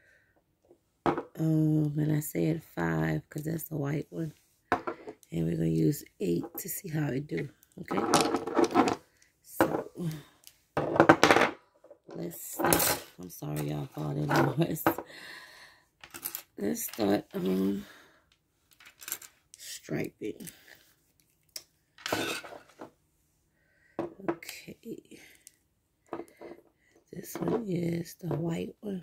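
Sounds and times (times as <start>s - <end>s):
woman speaking: 1.3s - 4.4s, 5.3s - 8.3s, 9.5s - 10.4s, 12.1s - 15.4s, 16.6s - 18.0s, 19.6s - 20.7s, 24.2s - 25.4s, 27.1s - 29.0s
bottle rustling clatter on table: 22.0s - 22.9s.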